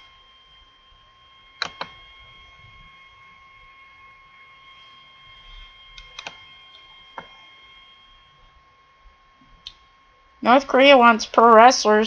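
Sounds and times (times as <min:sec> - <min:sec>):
high-pitched electrical whine: 0:00.0 - 0:12.0
computer mouse clicks: 0:01.6 - 0:02.0, 0:06.0 - 0:07.3.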